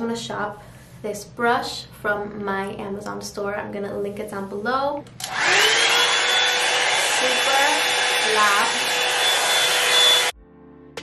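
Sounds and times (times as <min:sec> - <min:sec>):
hot-air brush motor whine: 0:05.2 - 0:10.4.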